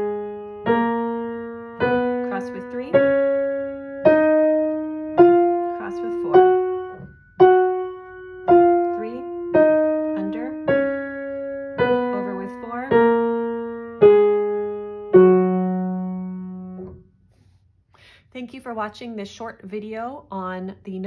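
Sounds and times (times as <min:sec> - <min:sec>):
piano playing a scale: 0:00.0 - 0:17.0.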